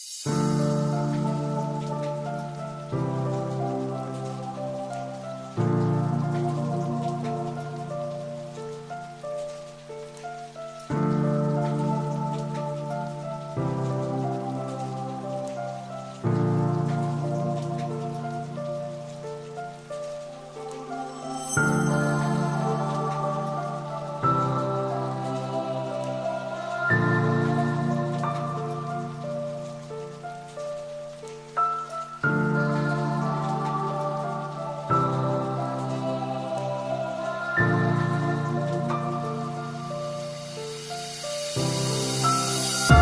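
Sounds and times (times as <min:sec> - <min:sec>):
faint crackling hiss: 0:00.0 - 0:43.0.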